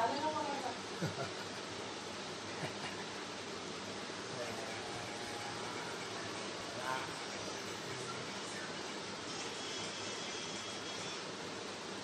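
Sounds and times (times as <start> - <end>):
steady hiss of noise: 0.0 - 12.0.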